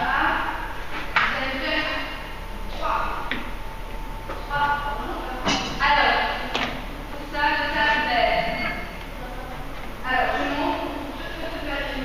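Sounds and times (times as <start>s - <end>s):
voices talking: 4.1s - 12.0s.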